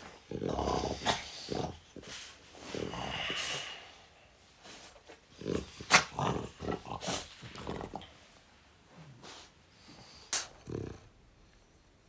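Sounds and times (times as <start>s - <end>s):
dog grunting and snuffling: 0.0s - 8.3s.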